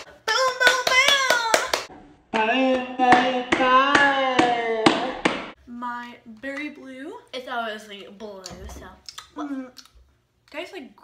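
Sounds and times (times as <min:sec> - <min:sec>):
high-pitched voice chanting: 0:02.3 - 0:05.2.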